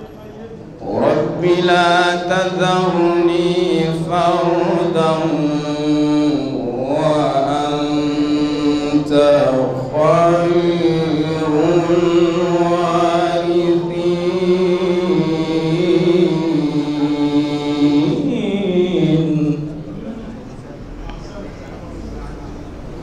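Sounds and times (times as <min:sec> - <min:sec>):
man chanting recitation: 0:00.2 - 0:21.7.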